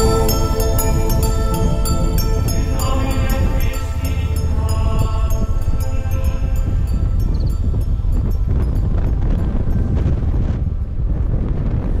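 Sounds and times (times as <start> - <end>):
music track: 0.0 - 10.5
wind buffeting microphone: 0.0 - 12.0.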